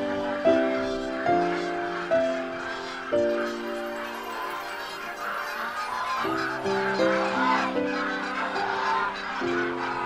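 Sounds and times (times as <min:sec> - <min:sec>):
flock of geese honking: 0:00.0 - 0:10.0.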